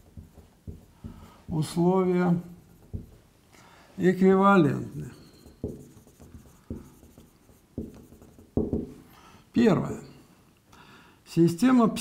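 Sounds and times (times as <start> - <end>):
marker writing on whiteboard: 0.0 - 3.3, 4.6 - 9.0.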